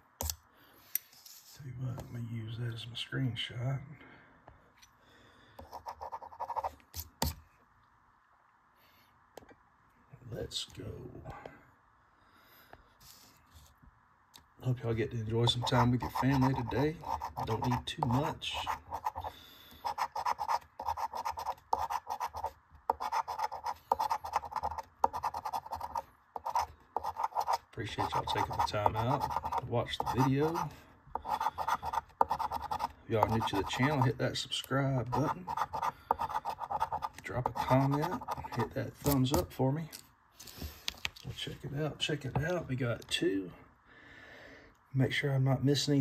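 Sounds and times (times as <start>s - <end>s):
rapid scratching: 15.4s - 34.3s, 35.0s - 39.2s.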